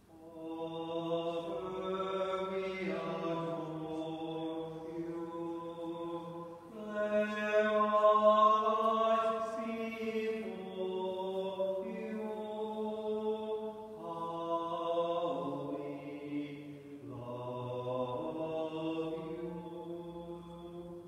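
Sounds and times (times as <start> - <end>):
slow sung hymn: 0.0 - 21.0.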